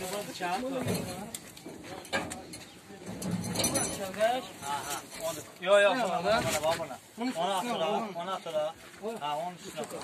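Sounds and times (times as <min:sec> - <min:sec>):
tyres dropped onto a pile: 0:00.0 - 0:04.2
men's voices chattering: 0:00.0 - 0:10.0.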